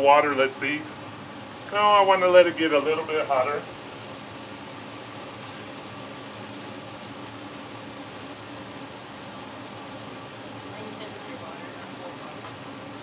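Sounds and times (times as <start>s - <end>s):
exhaust vent fan: 0.0s - 13.0s
gas burners hissing: 0.0s - 13.0s
water drops sizzling on griddle: 0.0s - 13.0s.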